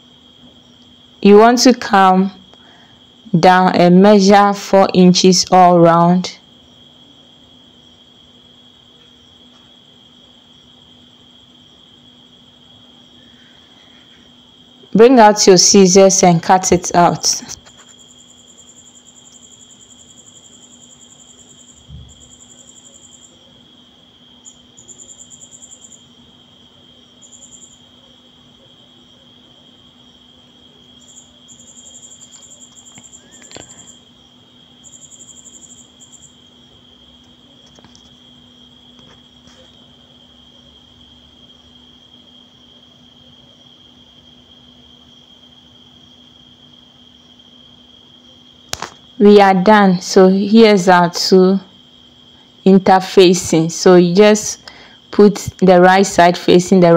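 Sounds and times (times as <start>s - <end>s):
cricket chirping: 0.0s - 56.9s.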